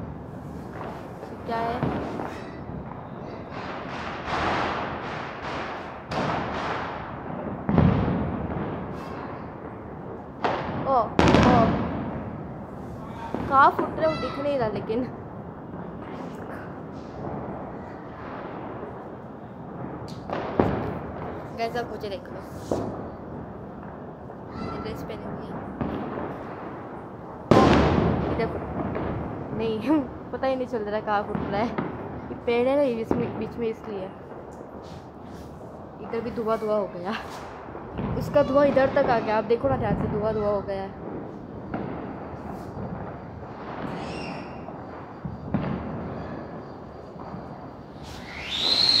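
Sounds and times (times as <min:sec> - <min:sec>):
distant firecrackers: 0:00.0 - 0:49.0.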